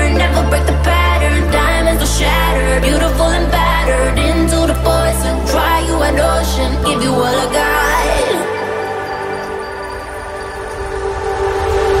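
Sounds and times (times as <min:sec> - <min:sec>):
held synth chord: 0:00.0 - 0:12.0.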